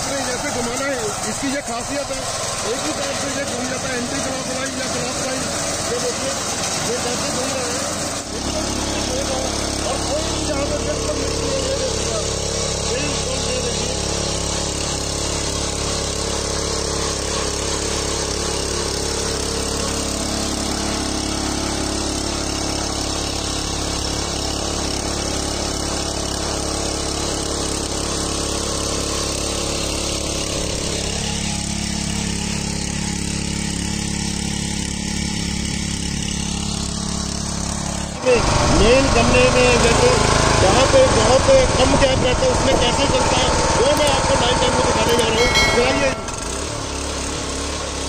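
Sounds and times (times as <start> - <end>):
power tiller engine running: 0.0 - 48.0
tines churning soil: 0.0 - 48.0.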